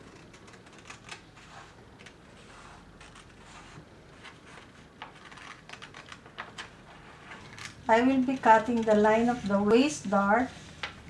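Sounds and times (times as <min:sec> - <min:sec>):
scissors snipping paper: 0:00.0 - 0:02.2
paper rustling: 0:00.0 - 0:11.0.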